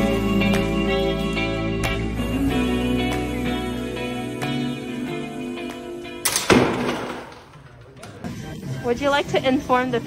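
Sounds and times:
bucket crashing: 0:06.4 - 0:07.7.

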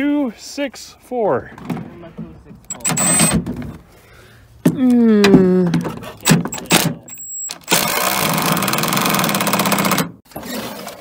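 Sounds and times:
impact driver burst: 0:02.7 - 0:03.4, 0:07.6 - 0:10.2.

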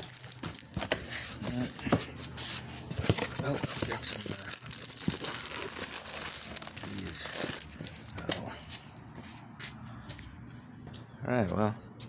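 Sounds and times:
plastic wrapping crinkling: 0:00.0 - 0:02.0, 0:02.6 - 0:08.9.

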